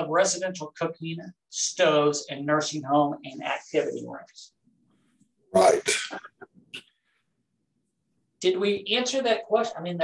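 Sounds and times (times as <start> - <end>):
person speaking: 5.5 - 6.9.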